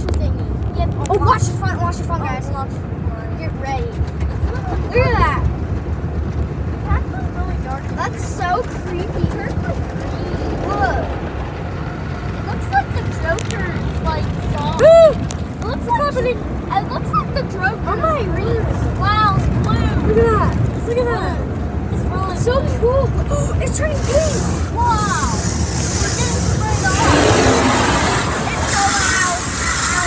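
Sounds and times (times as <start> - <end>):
car wash brushes and water spray: 22.4 - 30.0.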